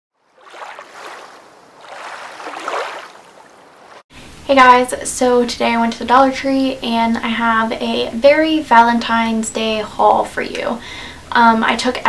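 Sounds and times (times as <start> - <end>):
waves washing on a beach: 0.3 - 4.0.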